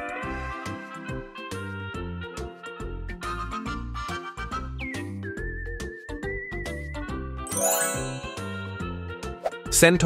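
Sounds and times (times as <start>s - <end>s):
high chime: 7.5s - 9.0s.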